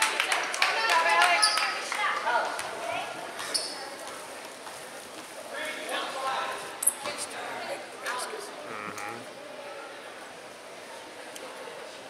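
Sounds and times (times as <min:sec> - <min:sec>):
sneaker squeak: 0:03.4 - 0:03.9
people calling out: 0:08.7 - 0:09.3.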